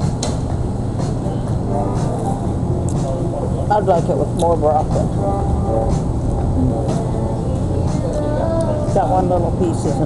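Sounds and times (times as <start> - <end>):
restaurant background rumble: 0.0 - 10.0.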